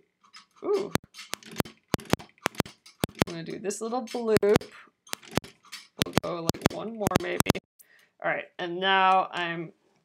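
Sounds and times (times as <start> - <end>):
sewing machine stitching clicks: 1.2 - 7.6.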